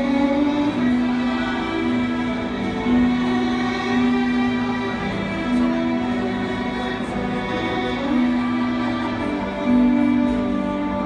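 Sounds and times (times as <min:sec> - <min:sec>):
violins playing sustained bowed notes: 0:00.0 - 0:11.0.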